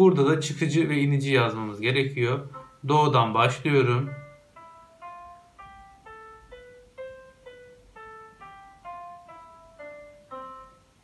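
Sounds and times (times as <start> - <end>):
sampled piano single notes: 0.0 - 11.0.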